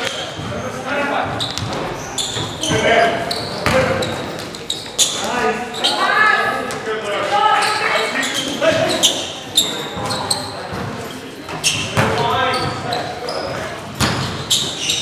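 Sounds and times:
players calling out: 0.0 - 15.0
sneakers squeaking on court: 0.0 - 15.0
basketball bouncing: 14.0 - 14.4.

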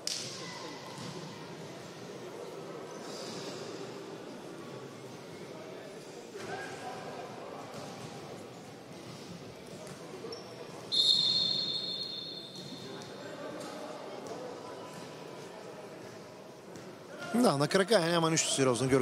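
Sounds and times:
crowd murmur and voices: 0.0 - 19.0
shrill whistle blast: 10.9 - 12.6.

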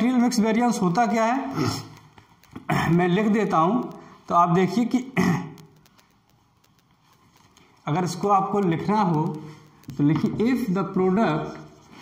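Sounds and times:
man speaking: 0.0 - 5.7, 7.8 - 11.8
soft ticks: 0.0 - 12.0.

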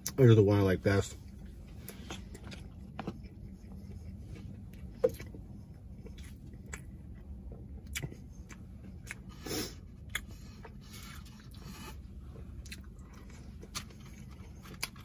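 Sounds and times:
person chewing food: 1.3 - 15.0.

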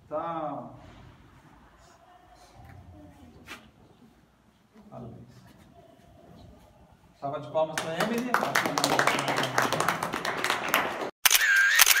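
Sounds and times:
room noise: 0.0 - 11.1
scattered claps: 7.7 - 11.1
camera shutter clicks: 11.2 - 12.0.

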